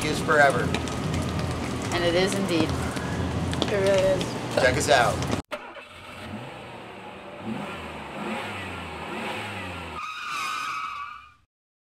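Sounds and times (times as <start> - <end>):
vehicle engine revving: 0.0 - 10.0.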